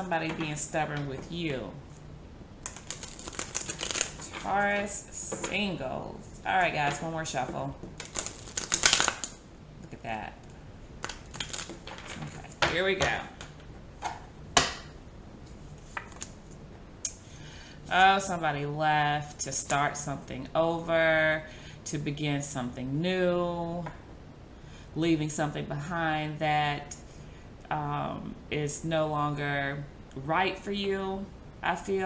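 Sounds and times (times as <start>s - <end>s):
cards being shuffled: 2.7s - 4.5s, 8.0s - 9.3s, 15.8s - 16.4s.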